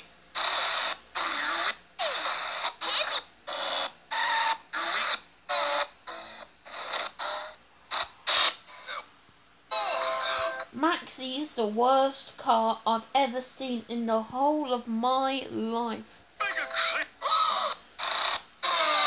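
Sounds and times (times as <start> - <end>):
hissy cartoon sound effects: 0.0 - 7.2, 16.4 - 19.0.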